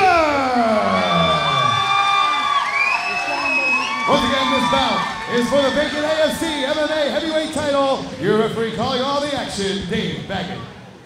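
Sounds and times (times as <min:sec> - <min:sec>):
crowd cheering: 0:00.0 - 0:08.3
announcer's amplified voice: 0:04.1 - 0:10.7.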